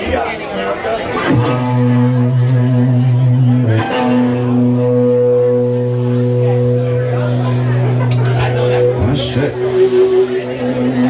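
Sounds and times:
low amplified drone note: 1.3 - 11.0.

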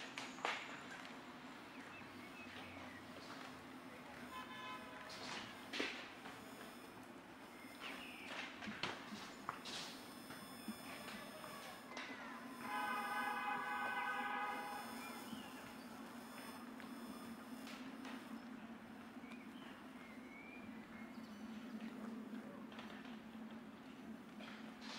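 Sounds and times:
low hum: 9.1 - 22.6
held pitched tone: 10.0 - 17.7.

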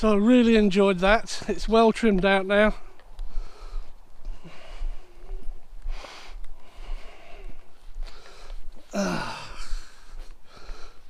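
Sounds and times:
wind rumbling on microphone: 2.8 - 8.9
man breathing out: 3.3 - 11.0.

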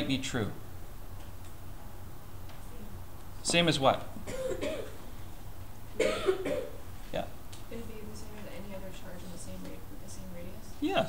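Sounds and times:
person coughing: 4.2 - 5.0, 6.0 - 6.8.

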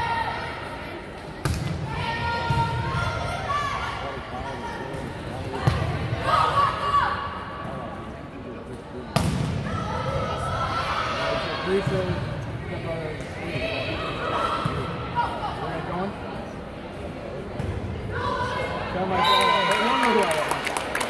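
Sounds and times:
people shouting in gym: 0.0 - 0.9, 6.2 - 7.5, 9.6 - 12.1
ball hits and bounces: 9.1 - 9.7.

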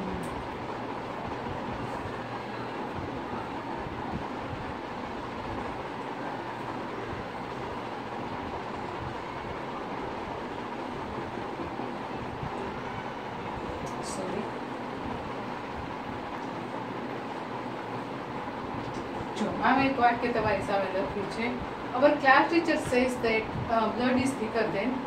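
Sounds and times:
steady rushing noise: 0.0 - 25.0.

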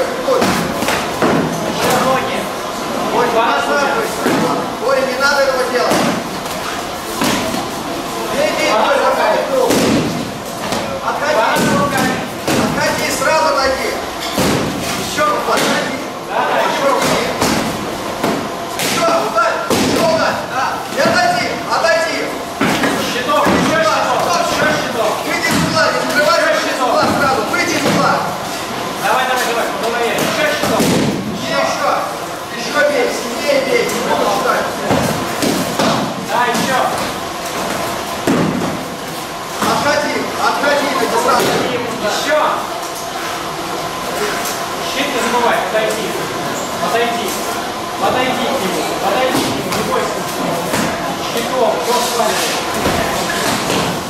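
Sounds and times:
voices: 0.0 - 54.0.

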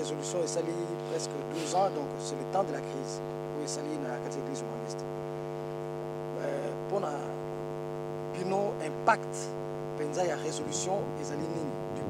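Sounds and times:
electrical mains hum: 0.0 - 12.0
snatches of speech: 1.5 - 2.1.

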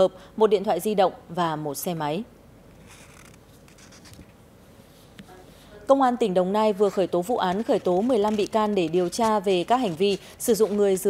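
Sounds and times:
plastic sachet rubbing on paper: 2.8 - 4.3, 6.8 - 11.0.

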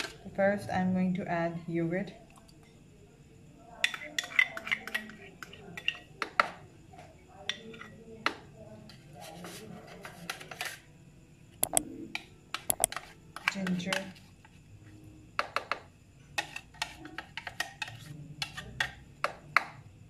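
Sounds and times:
spoon knocking on containers: 11.6 - 12.0, 12.7 - 14.0, 15.4 - 15.9
spoon scraping ceramic bowl: 12.7 - 13.0.

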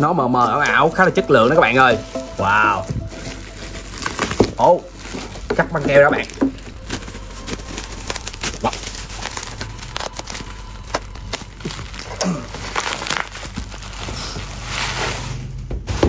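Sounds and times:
bubble wrap crinkling: 0.4 - 15.6
packing tape cut with box cutter: 3.2 - 16.0.

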